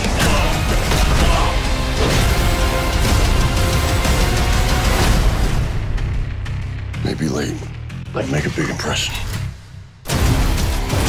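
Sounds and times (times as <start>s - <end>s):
trailer music: 0.0s - 11.0s.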